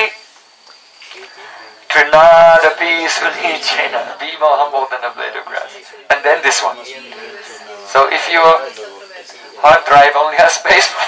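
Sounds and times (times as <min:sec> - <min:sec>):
crickets trilling: 0:00.0 - 0:11.0
man talking: 0:01.3 - 0:11.0.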